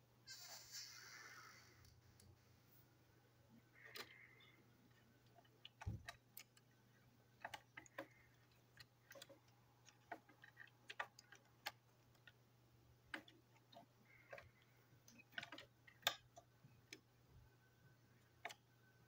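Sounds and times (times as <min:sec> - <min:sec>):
plastic toy parts clicking: 0:07.4 - 0:12.4, 0:13.1 - 0:17.0.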